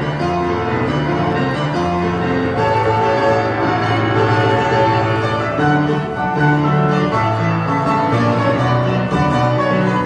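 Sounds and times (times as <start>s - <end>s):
piano playing held chords: 0.0s - 10.0s.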